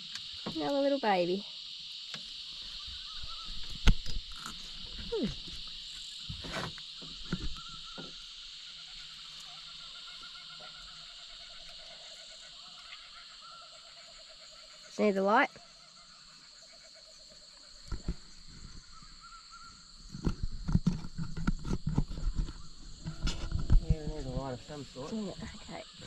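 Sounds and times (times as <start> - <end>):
high-pitched insect buzz: 0.0 - 26.0
low pulsing frog trill: 0.9 - 26.0.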